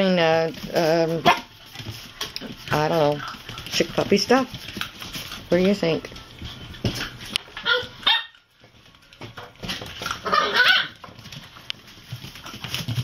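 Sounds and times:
puppies barking: 0:01.0 - 0:03.8, 0:06.3 - 0:09.0, 0:09.7 - 0:11.3.

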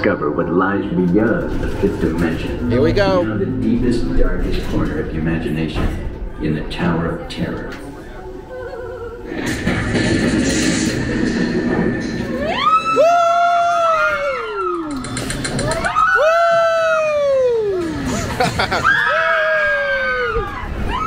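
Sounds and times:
loud rushing noise: 0:09.3 - 0:14.1
people screaming: 0:12.3 - 0:21.0.

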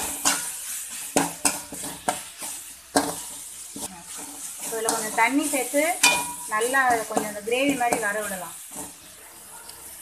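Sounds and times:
food sizzling in oil: 0:00.0 - 0:10.0
spatula scraping a pan: 0:00.0 - 0:10.0.

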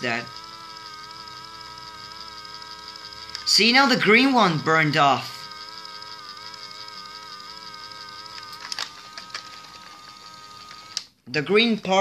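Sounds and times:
person speaking: 0:00.0 - 0:00.4, 0:03.4 - 0:05.6, 0:11.3 - 0:12.0
toy robot playing electronic tune: 0:00.0 - 0:11.0.

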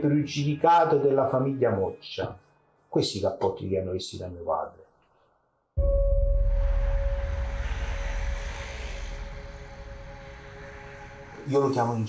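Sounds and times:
deep rumble: 0:05.8 - 0:11.5
hiss: 0:07.6 - 0:12.0.

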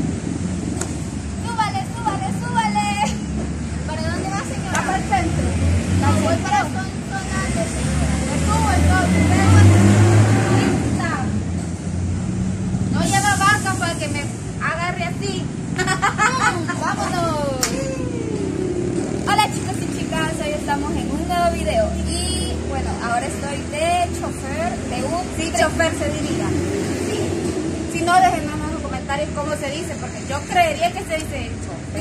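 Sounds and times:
motor vehicle passing: 0:00.0 - 0:32.0
traffic engine hum: 0:00.0 - 0:32.0
women's high-pitched voices: 0:01.4 - 0:05.4, 0:06.0 - 0:09.8, 0:16.2 - 0:18.6, 0:19.2 - 0:27.3.

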